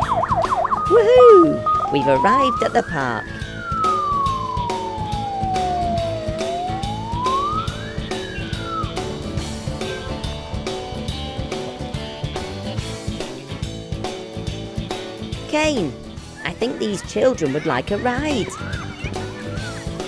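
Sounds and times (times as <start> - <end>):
toy siren wailing: 0.0 - 9.0
background music with steady beat: 0.0 - 20.0.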